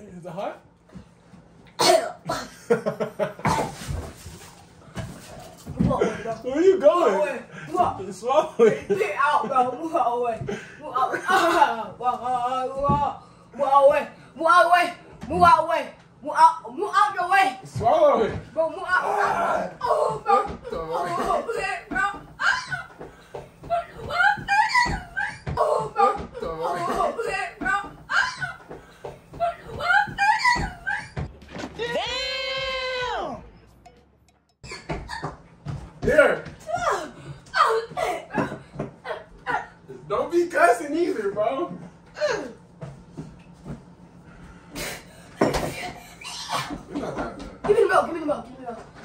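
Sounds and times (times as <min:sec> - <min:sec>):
boy coughing: 0:01.8 - 0:02.7, 0:03.4 - 0:03.9, 0:20.4 - 0:21.8, 0:26.1 - 0:27.5
boy gagging: 0:18.9 - 0:23.0, 0:23.7 - 0:28.7.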